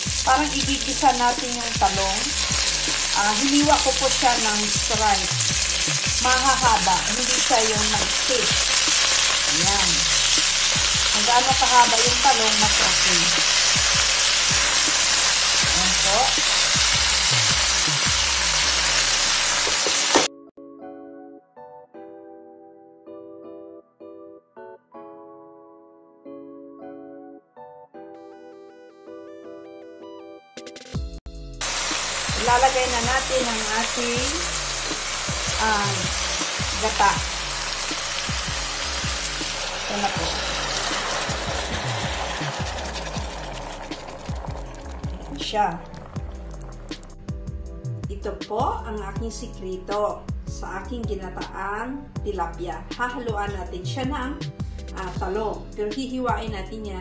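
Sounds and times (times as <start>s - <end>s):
vegetables sizzling in hot oil: 0.0s - 20.3s, 31.6s - 47.2s
background music with steady beat: 0.0s - 21.0s, 28.0s - 57.0s.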